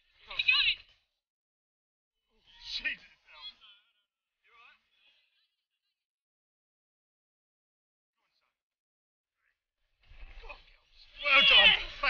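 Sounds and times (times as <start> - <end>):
person yelling: 11.2 - 12.0.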